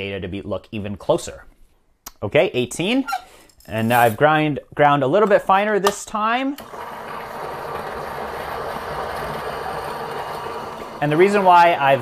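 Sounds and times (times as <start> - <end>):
coffee grinder grinding beans: 6.6 - 12.0.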